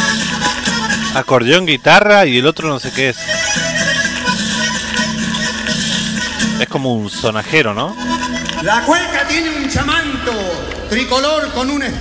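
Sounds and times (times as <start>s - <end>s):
accordion: 0.0s - 10.1s
guitar: 0.0s - 11.0s.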